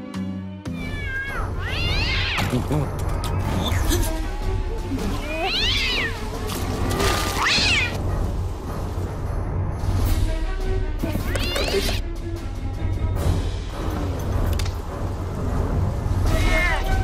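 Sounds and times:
cat yowling: 0.7 - 2.5, 5.2 - 6.2, 7.3 - 8.0, 16.3 - 17.0.

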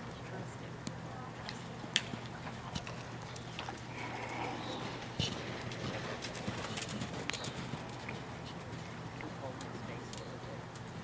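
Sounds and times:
horse hooves cantering on sand: 1.6 - 11.0.

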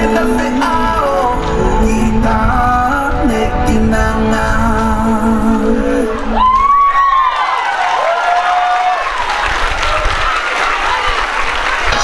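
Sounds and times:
dance music: 0.0 - 6.6, 10.8 - 12.0
audience clapping and cheering: 6.4 - 12.0.

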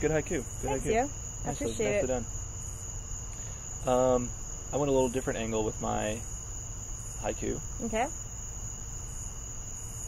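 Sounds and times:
high-pitched whine: 0.0 - 2.2
spoken word: 0.6 - 2.2.

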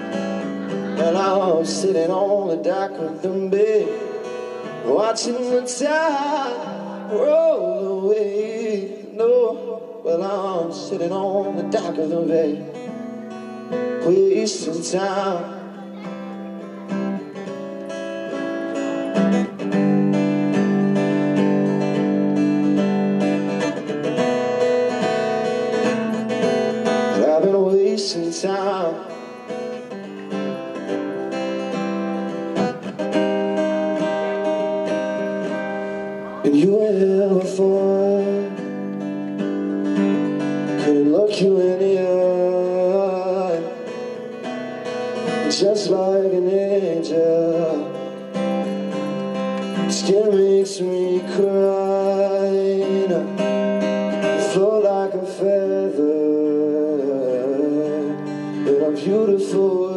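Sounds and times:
man singing wordless notes: 0.0 - 19.7, 22.7 - 39.4, 40.0 - 59.9
acoustic guitar: 0.0 - 59.9.

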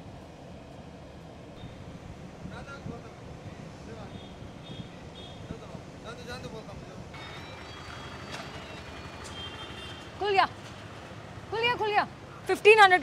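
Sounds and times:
traffic: 0.0 - 13.0.

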